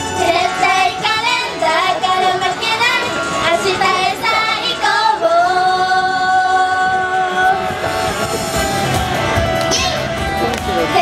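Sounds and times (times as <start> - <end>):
girls singing into microphones: 0.0 - 7.9
pop backing track: 0.0 - 11.0.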